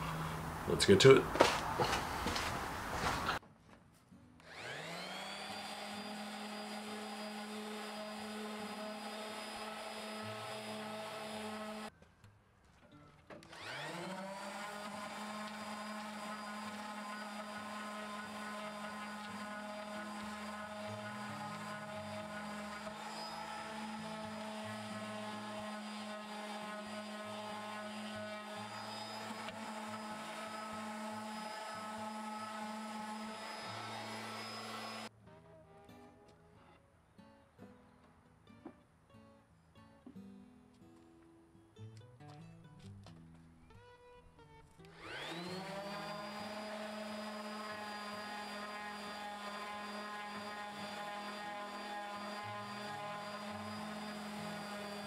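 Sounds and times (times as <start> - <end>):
orbital sander humming: 4.5 - 11.9, 13.6 - 35.1, 44.9 - 55.0.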